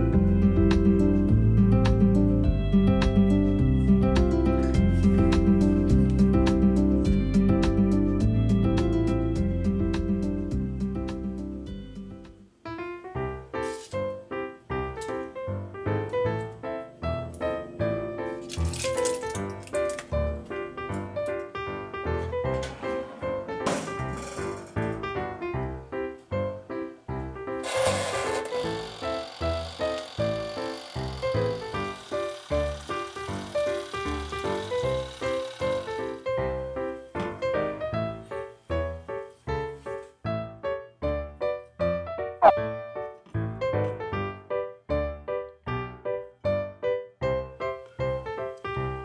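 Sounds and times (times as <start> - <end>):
background music with steady beat: 0.0 - 12.6.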